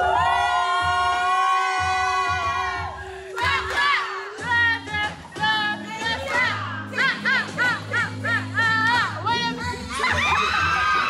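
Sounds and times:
music with steady bass beat: 0.0s - 11.0s.

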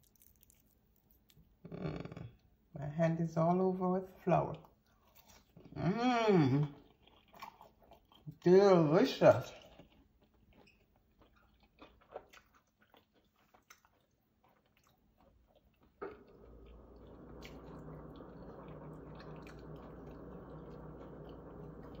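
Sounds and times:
chewing with mouth clicks: 0.0s - 1.5s, 6.6s - 8.4s, 9.3s - 22.0s
steady low hum: 15.9s - 22.0s.

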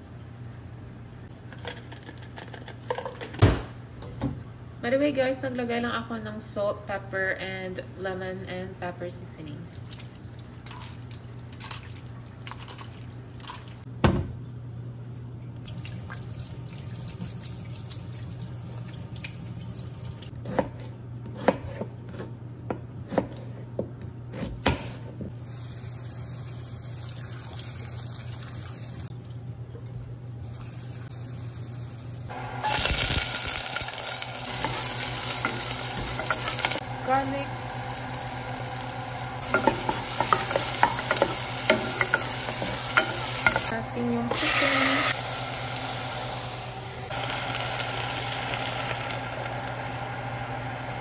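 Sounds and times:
steady low hum: 29.0s - 51.0s
onions sizzling in hot oil: 32.3s - 51.0s.

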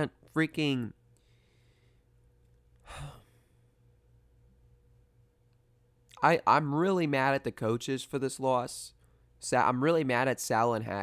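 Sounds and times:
man sighing: 2.8s - 3.6s.

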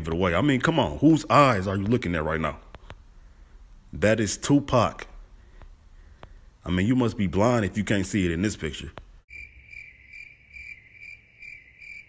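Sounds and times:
crickets chirping: 9.3s - 12.0s.

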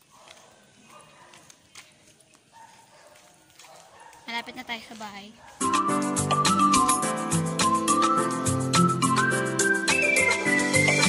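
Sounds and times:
footsteps on concrete: 0.0s - 5.8s.

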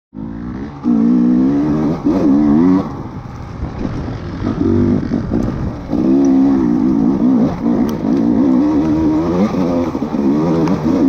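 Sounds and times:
dirt bike engine revving: 0.2s - 11.0s.

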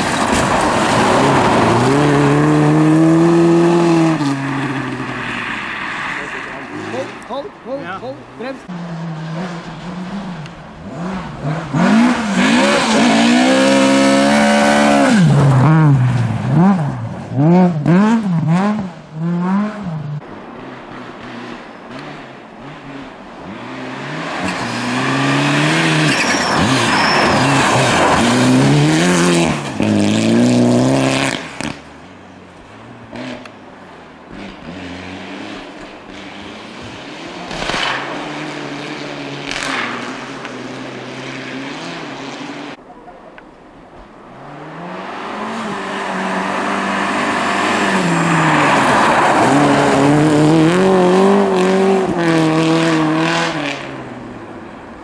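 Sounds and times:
rally car engines at hard throttle: 0.0s - 43.0s, 44.0s - 55.0s
car sliding through snow: 24.3s - 31.6s.

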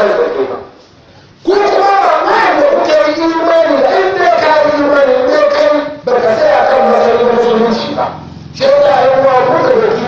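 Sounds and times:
man preaching into microphone: 0.0s - 10.0s.

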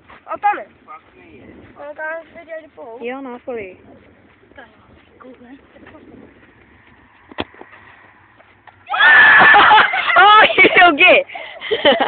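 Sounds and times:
football being kicked: 7.2s - 7.8s
people shouting: 8.8s - 10.6s.

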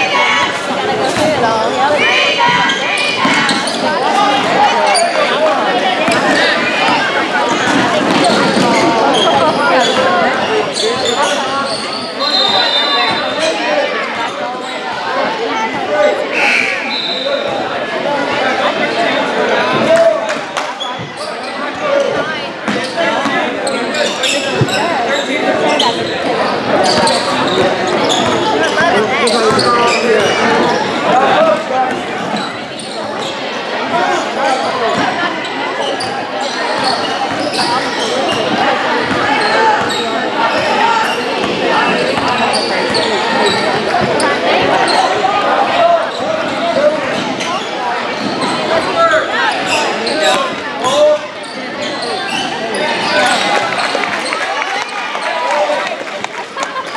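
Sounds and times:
indistinct echoing voices: 0.0s - 56.9s.

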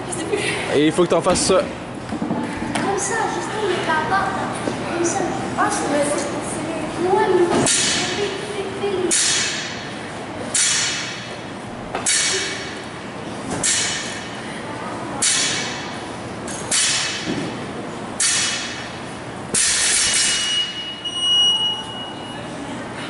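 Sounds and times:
workout timer beep: 20.5s - 22.4s.

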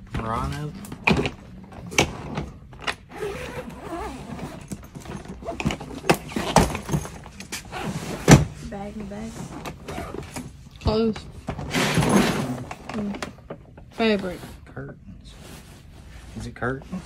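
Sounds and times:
suitcase knocks and clicks: 0.1s - 3.0s, 4.6s - 7.4s.

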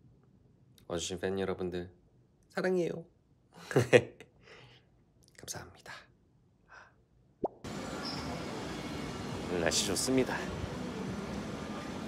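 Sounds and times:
outdoor street noise: 7.6s - 12.0s.

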